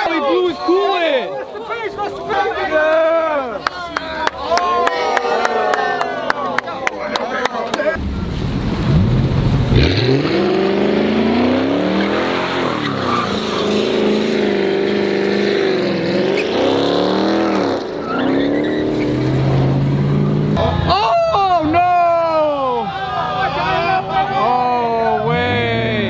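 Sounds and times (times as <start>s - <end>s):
car engine revving: 8.0s - 20.8s
tyres screeching on asphalt: 9.4s - 20.9s.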